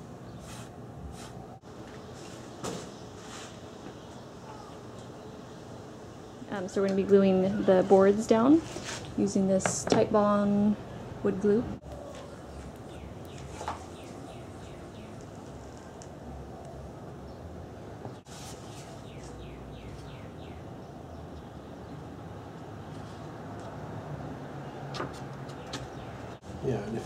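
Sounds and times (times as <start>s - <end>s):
low background hum: 0.0s - 23.2s.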